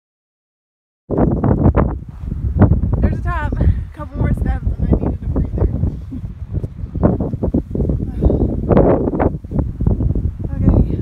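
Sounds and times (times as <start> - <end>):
wind rumbling on microphone: 1.1 - 11.0.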